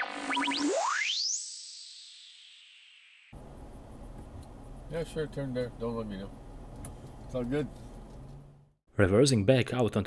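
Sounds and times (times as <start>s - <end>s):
rising whistle-like glide: 0.0s - 3.4s.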